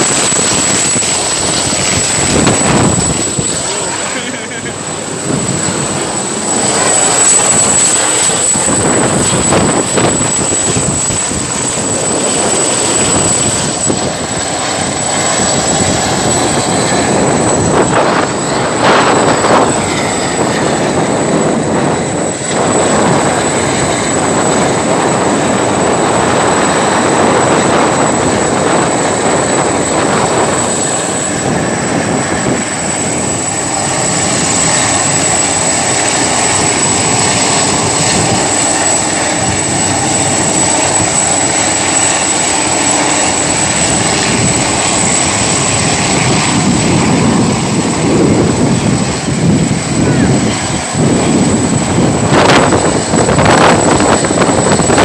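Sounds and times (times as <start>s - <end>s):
helicopter rotor and engine: 0.0s - 55.0s.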